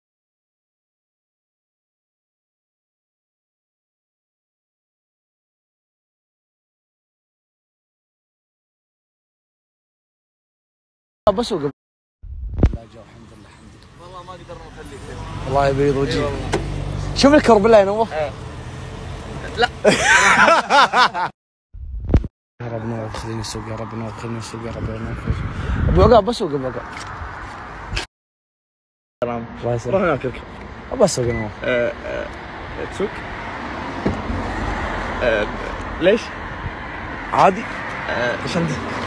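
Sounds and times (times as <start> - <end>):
low traffic rumble: 12.3 - 21.3, 22.6 - 28.1, 29.2 - 39.0.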